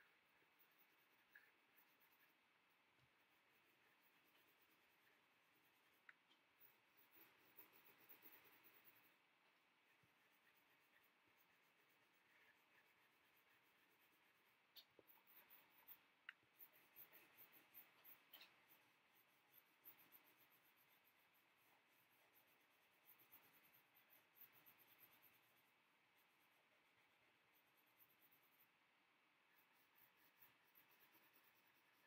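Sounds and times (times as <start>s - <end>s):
pencil scratching on paper: 0.0s - 32.0s.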